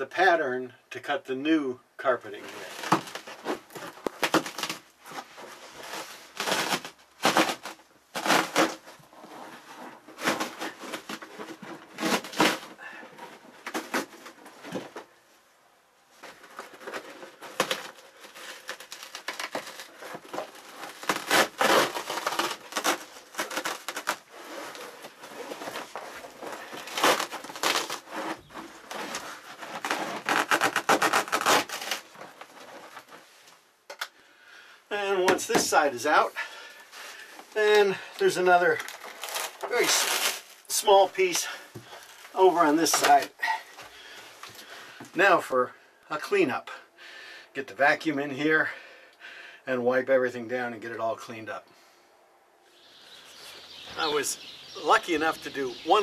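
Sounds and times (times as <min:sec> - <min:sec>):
carpet ripping from floor: 0:02.4 - 0:12.8, 0:16.2 - 0:33.2, 0:38.8 - 0:40.7.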